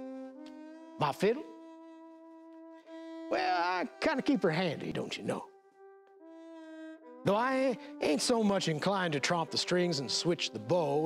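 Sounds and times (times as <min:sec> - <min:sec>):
fiddle holding a long note: 0:00.0 - 0:11.0
person reciting: 0:03.3 - 0:05.5, 0:07.3 - 0:11.0.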